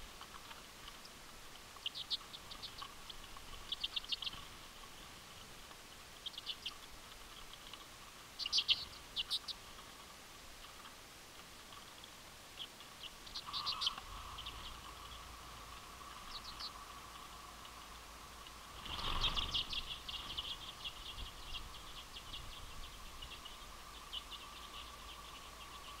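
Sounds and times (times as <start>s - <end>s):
redpolls chirping: 0.1s - 11.0s, 11.6s - 26.0s
rush of bird wings: 18.8s - 20.0s.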